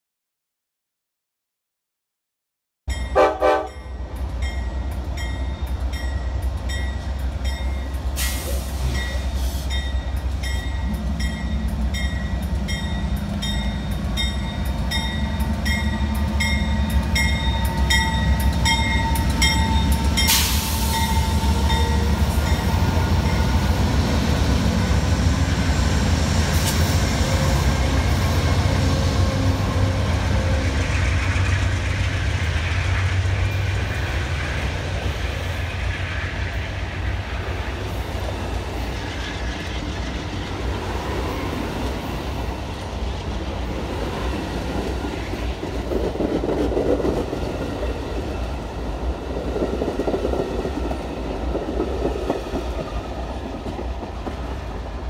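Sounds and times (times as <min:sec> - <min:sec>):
locomotive bell ringing: 0:02.9 - 0:08.3, 0:08.9 - 0:23.7
train wheels on rails: 0:02.9 - 0:55.0
diesel locomotive rumble: 0:03.2 - 0:55.0.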